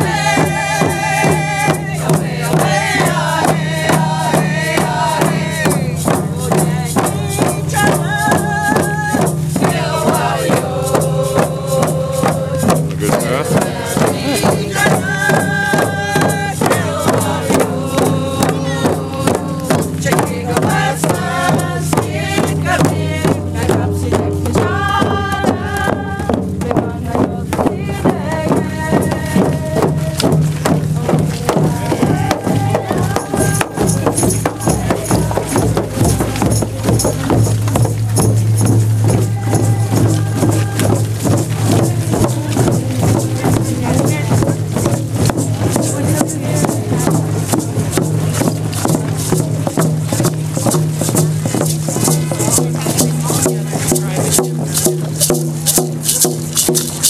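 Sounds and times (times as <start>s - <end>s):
group of people chanting: 0.0s - 49.5s
hand drums beating: 0.0s - 57.0s.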